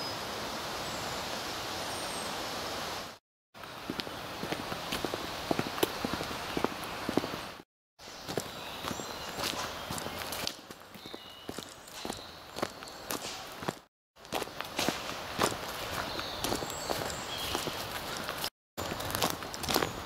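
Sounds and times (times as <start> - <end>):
footsteps on outdoor path: 3.6 - 20.0
bird chirps: 8.1 - 10.4, 11.0 - 13.3, 15.9 - 17.8.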